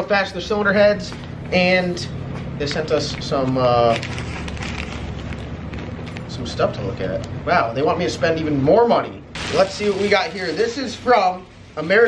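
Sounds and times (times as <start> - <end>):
catalog pages flipping: 2.6 - 6.7.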